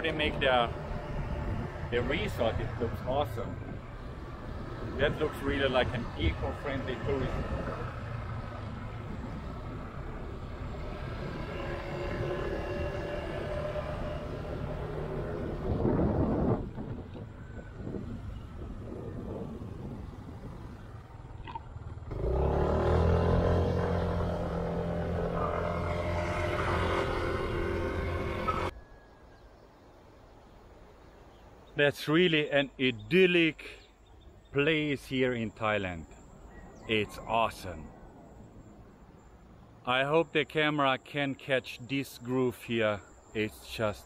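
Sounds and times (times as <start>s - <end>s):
vehicle engine running: 0.0s - 16.6s, 17.4s - 28.7s
road and wind noise: 0.0s - 44.0s.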